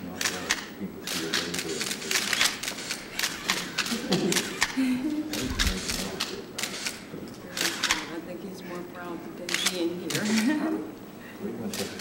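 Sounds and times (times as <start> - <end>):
low voices: 0.0 - 8.9
camera shutters clicking: 0.1 - 8.2, 9.4 - 10.6, 11.7 - 12.0.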